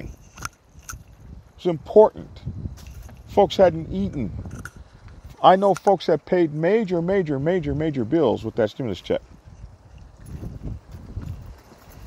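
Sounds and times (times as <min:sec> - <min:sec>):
voice: 0:01.6 - 0:02.4, 0:03.3 - 0:04.4, 0:05.4 - 0:09.2
soft low thuds and rumble: 0:09.3 - 0:12.0.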